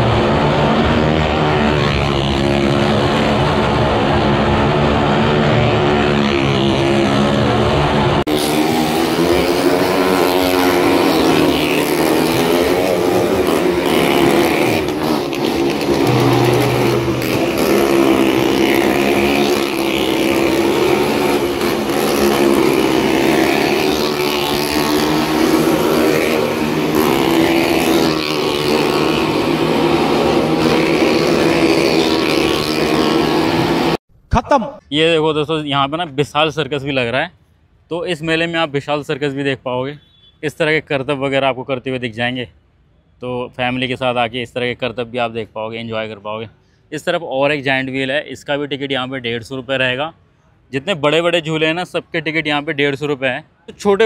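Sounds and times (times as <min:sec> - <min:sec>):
motorcycle engines revving: 0:00.0 - 0:34.0.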